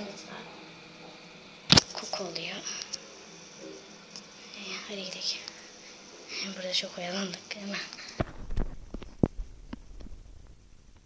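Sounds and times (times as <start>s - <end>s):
young girl's voice: 4.6s - 5.5s, 6.3s - 8.0s.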